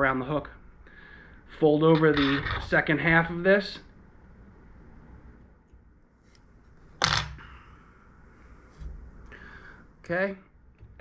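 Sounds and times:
thread wrapping at a vise: 5.6s - 7.5s.

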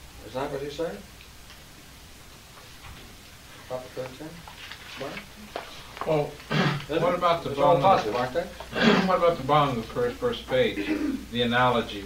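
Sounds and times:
low hum and hiss: 0.0s - 12.0s.

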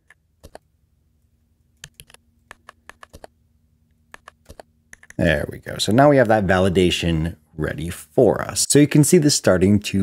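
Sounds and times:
computer keyboard key clicks: 1.8s - 3.3s, 4.1s - 5.2s.

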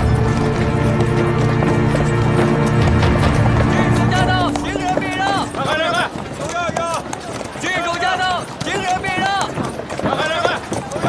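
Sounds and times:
background music with low notes: 0.0s - 6.4s
horse hooves clip-clopping: 0.0s - 11.0s.

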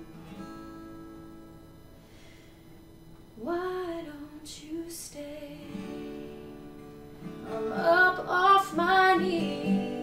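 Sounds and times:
quiet acoustic guitar: 0.0s - 10.0s
woman singing: 3.4s - 6.3s, 7.3s - 10.0s.

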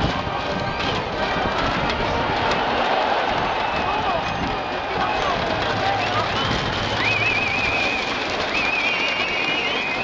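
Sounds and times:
cheering crowd din: 0.0s - 10.0s.

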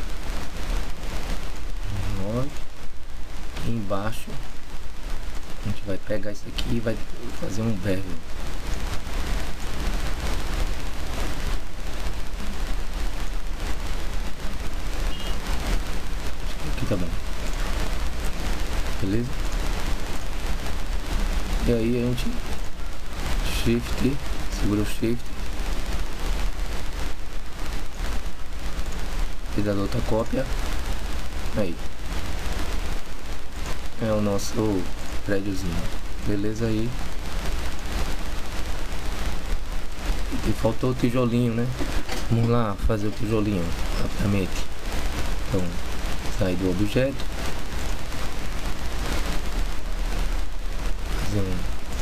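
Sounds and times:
low electrical hum: 0.0s - 52.0s
microphone hiss: 0.0s - 52.0s.

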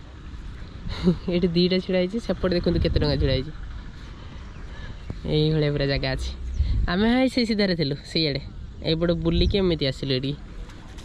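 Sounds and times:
low background rumble: 0.0s - 11.0s
person talking: 0.9s - 3.6s, 5.2s - 10.4s.

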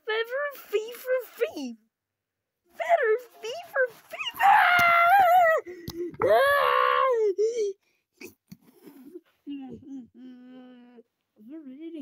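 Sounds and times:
child wailing: 4.2s - 5.6s, 6.2s - 7.3s.

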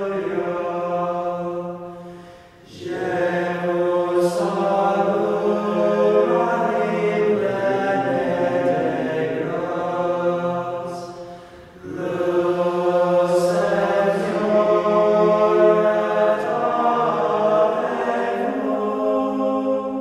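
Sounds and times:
choir chanting: 0.0s - 20.0s.

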